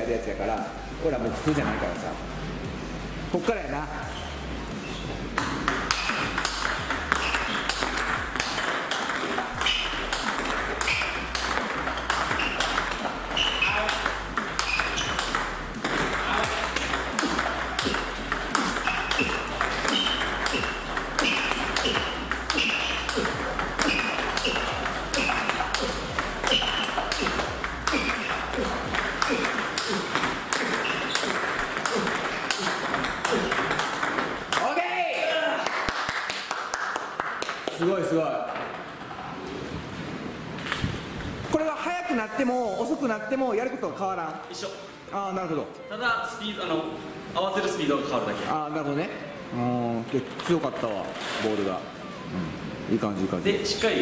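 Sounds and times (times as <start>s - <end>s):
table tennis balls clicking: 5.4s - 35.3s, 37.2s - 41.6s, 50.0s - 51.8s.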